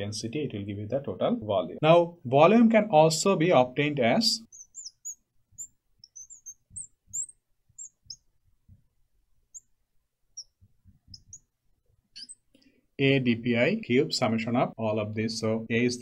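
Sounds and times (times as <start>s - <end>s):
marker squeaking on glass: 4.4s - 12.5s.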